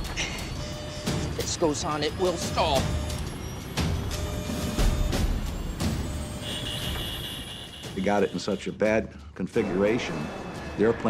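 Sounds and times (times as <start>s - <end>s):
tense music with sharp hits: 0.0s - 8.6s
high-pitched warning tone: 0.1s - 8.7s.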